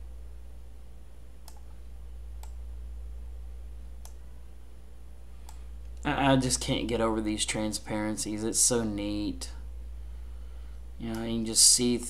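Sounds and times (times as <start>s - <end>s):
steady low hum: 0.0s - 12.0s
computer mouse clicks: 1.4s - 1.8s, 2.4s - 2.6s, 4.0s - 4.2s, 5.4s - 6.0s.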